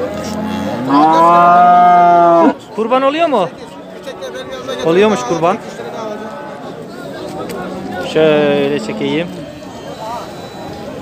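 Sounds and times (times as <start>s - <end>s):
cow mooing: 0.2s - 2.6s, 7.6s - 9.3s.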